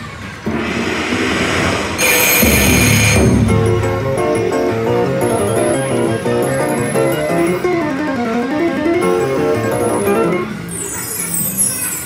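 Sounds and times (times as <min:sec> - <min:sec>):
rising whoosh: 0:00.5 - 0:03.5
chiming melodic notes: 0:04.4 - 0:07.6.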